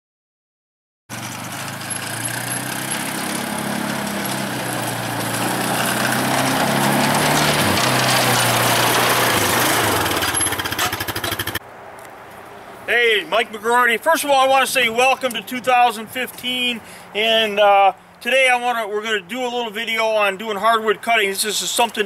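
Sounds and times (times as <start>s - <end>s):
atv engine running: 1.1s - 11.6s.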